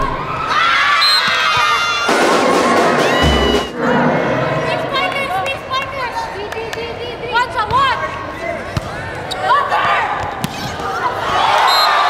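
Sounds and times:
crowd cheering: 0.0s - 6.5s, 9.4s - 12.0s.

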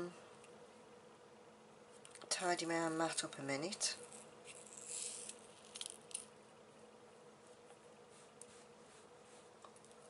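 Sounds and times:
faint scrapes of glass beads: 3.8s - 6.2s.

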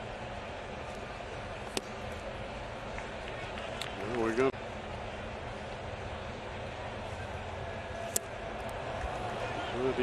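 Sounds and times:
murmur of large crowd: 0.0s - 10.0s.

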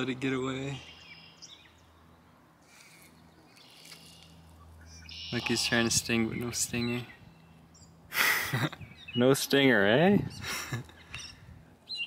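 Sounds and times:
faint bird chirps: 0.7s - 8.0s.

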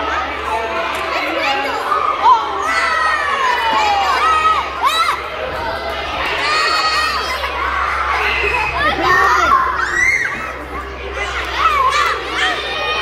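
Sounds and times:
children shouting and cheering: 0.0s - 13.0s.

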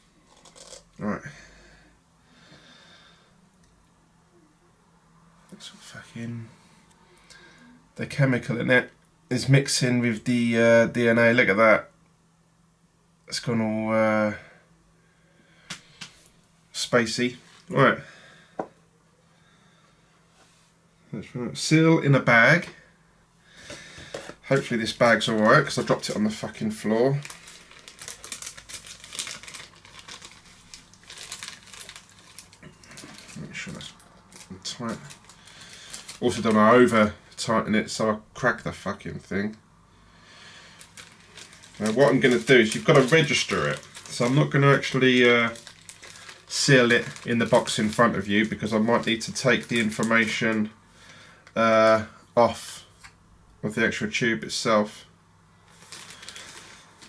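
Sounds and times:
plastic bag crinkling: 0.3s - 0.9s, 23.6s - 37.5s, 40.6s - 50.7s, 55.7s - 57.0s.

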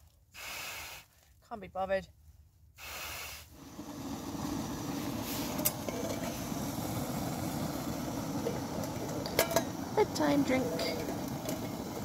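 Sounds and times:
camping stove burning: 2.8s - 12.0s.

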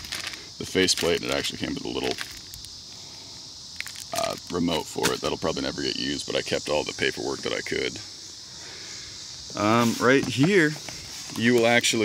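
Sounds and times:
crickets chirring: 0.0s - 12.0s.

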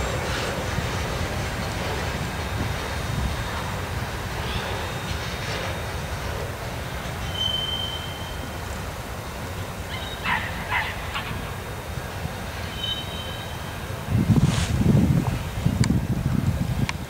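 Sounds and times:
freight train rumbling: 0.0s - 17.0s
train wheel squeal: 4.4s - 6.0s, 7.0s - 8.7s, 12.6s - 13.9s.

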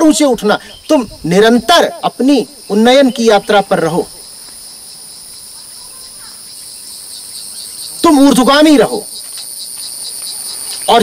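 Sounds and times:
insects chirring: 0.0s - 11.0s.

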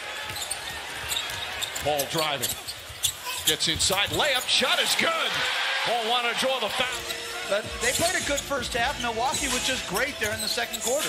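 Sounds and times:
arena crowd noise: 0.0s - 11.0s.

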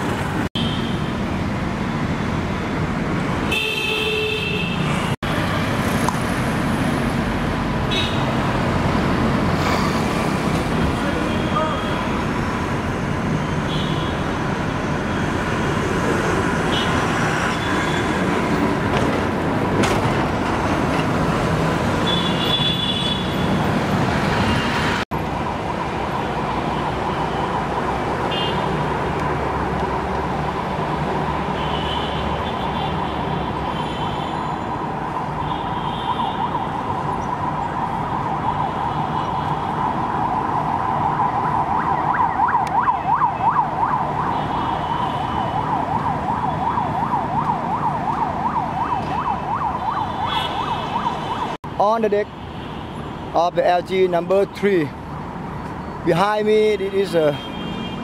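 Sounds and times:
city traffic noise: 0.0s - 58.0s
siren wailing: 34.4s - 51.6s.

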